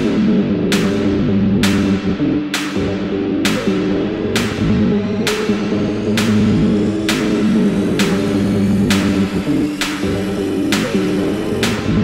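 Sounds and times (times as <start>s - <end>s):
looping synthesizer riff: 0.0s - 12.0s.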